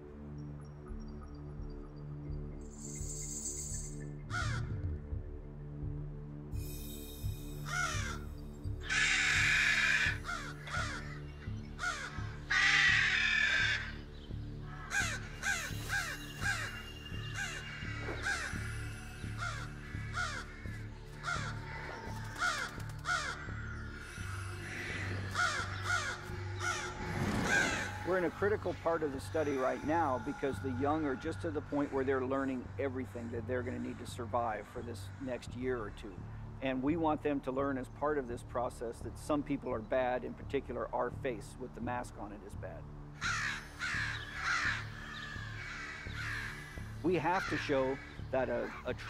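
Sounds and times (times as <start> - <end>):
background music: 0.0 - 49.0
crows cawing: 4.3 - 4.8, 7.6 - 31.8, 43.2 - 48.8.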